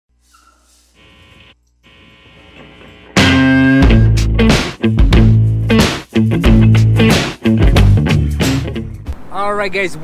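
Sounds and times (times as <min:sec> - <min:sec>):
electronic hum with hiss: 0:00.9 - 0:03.2.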